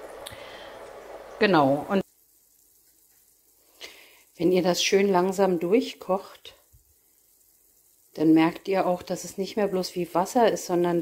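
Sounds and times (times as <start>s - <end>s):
faint simmering in a frying pan: 0.0s - 11.0s.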